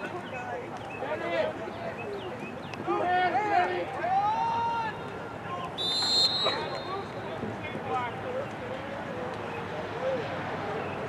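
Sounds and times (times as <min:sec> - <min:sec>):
voices shouting: 0:02.9 - 0:07.3
referee's whistle blast: 0:05.8 - 0:07.2.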